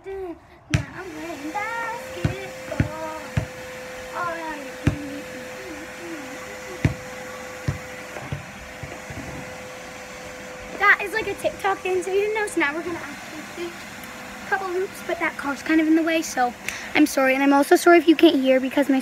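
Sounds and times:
vacuum cleaner humming: 0.0 - 19.0
basketball bouncing on pavement: 0.7 - 1.1, 2.1 - 3.7, 4.8 - 5.2, 6.8 - 9.3.

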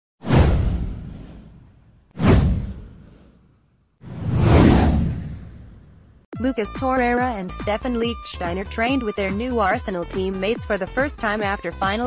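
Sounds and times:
whoosh with deep boom: 0.2 - 6.3.

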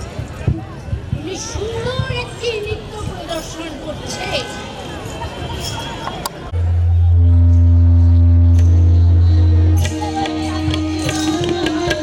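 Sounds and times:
tabla strokes: 6.6 - 12.0.

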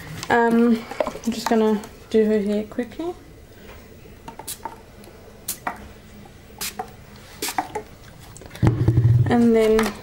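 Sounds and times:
spray bottle spritzing: 4.5 - 4.7, 6.6 - 7.8.

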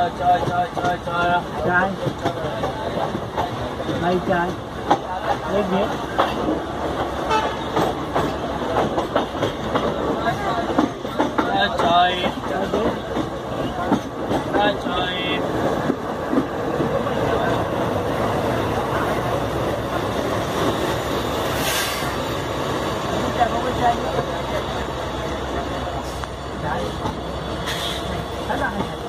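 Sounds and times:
train wheels rumbling on rail: 0.0 - 29.0.

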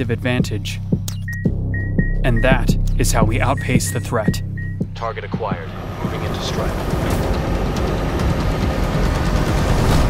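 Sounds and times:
helicopter flying past: 5.5 - 10.0.

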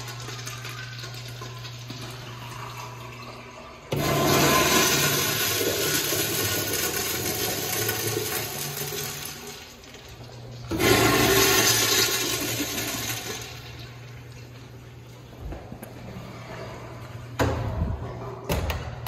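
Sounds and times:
urinal flushing: 0.0 - 18.5.

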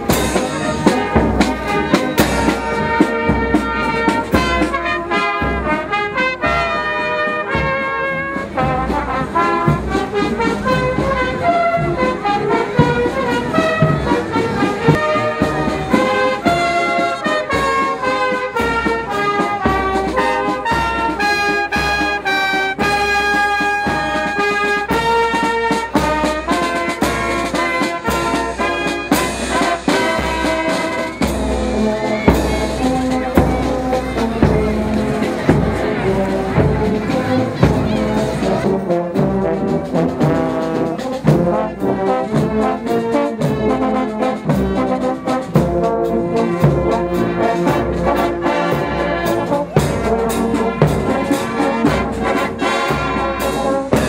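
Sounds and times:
brass band marching: 0.0 - 54.0
drums and cymbals: 0.0 - 54.0.

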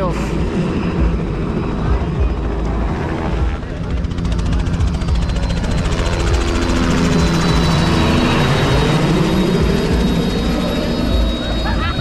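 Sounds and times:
helicopter engine and rotor: 0.0 - 12.0.

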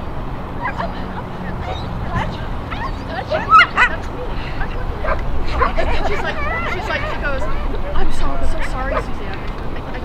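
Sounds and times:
dog yipping: 1.7 - 4.1.

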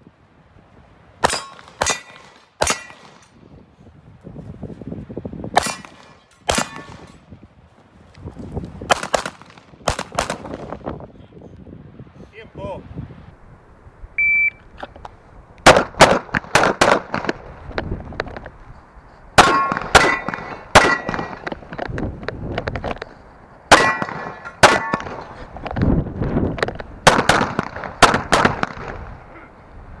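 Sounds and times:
metallic ring of steel targets: 1.2 - 3.3, 19.4 - 21.4, 23.7 - 25.3
pistol shots: 1.2 - 3.3, 5.6 - 7.1, 8.9 - 10.6, 15.6 - 17.4, 19.4 - 21.6, 23.7 - 25.3, 27.0 - 29.1
shot timer start beep: 14.2 - 14.6.

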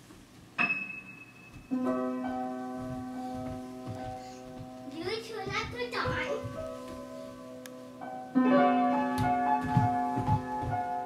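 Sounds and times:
piano note ringing: 0.6 - 5.1, 6.3 - 11.0
soft thumps: 2.8 - 4.8, 9.1 - 11.0.

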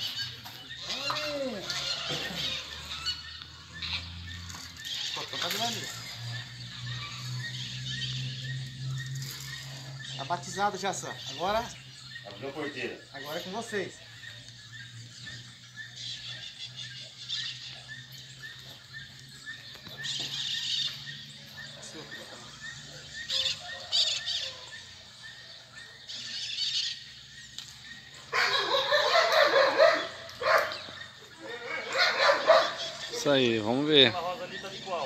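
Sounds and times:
distant voices: 0.0 - 35.0
dog barking: 28.3 - 31.0, 31.6 - 33.0.

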